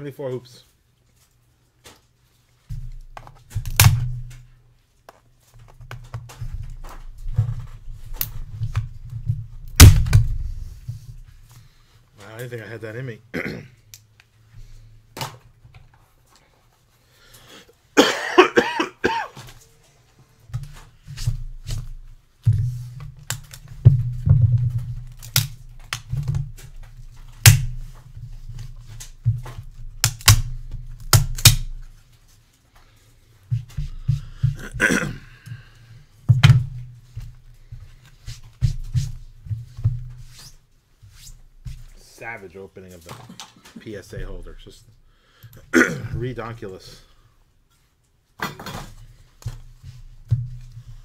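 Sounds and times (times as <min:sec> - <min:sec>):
person coughing: 0:13.3 - 0:13.8, 0:18.0 - 0:19.4, 0:34.6 - 0:35.4, 0:45.6 - 0:46.2
plastic snapping and clicking: 0:25.1 - 0:26.3, 0:30.0 - 0:31.8.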